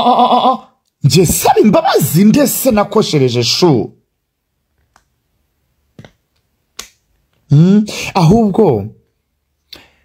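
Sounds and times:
person speaking: 0:00.0 - 0:04.1, 0:07.3 - 0:09.2.

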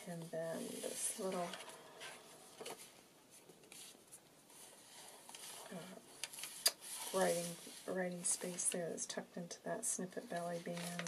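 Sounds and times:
paper pages rustling: 0:00.6 - 0:08.7, 0:10.4 - 0:11.0.

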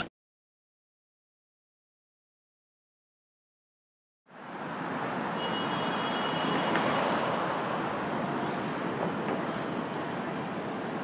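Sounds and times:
city traffic hum: 0:04.3 - 0:11.0.

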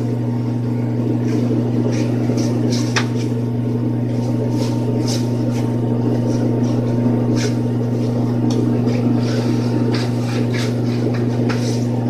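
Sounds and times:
exhaust fan humming: 0:00.0 - 0:12.0.

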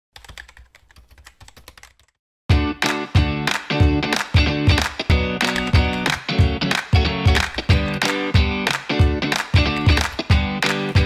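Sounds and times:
computer keyboard typing: 0:00.2 - 0:02.2.

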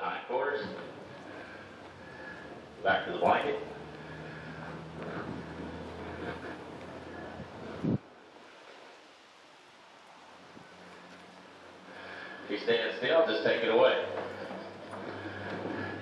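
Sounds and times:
wind buffeting microphone: 0:00.8 - 0:08.2.

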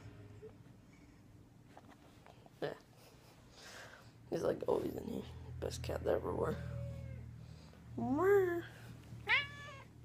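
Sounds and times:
cat meowing: 0:09.2 - 0:10.0.

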